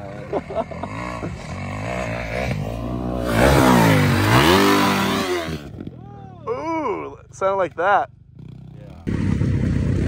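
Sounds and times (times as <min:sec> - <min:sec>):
dirt bike engine revving: 0:00.0 - 0:05.9, 0:08.1 - 0:10.0.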